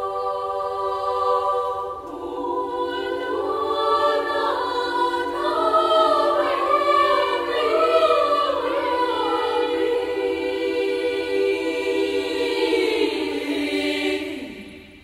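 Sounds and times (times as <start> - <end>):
girls choir singing a cappella: 0.0 - 15.0.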